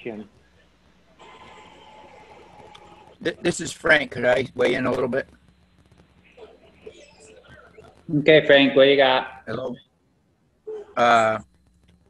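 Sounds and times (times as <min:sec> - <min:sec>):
speech: 0:00.0 - 0:00.3, 0:03.2 - 0:05.2, 0:08.1 - 0:09.8, 0:11.0 - 0:11.4
faint steady hiss: 0:00.0 - 0:12.0.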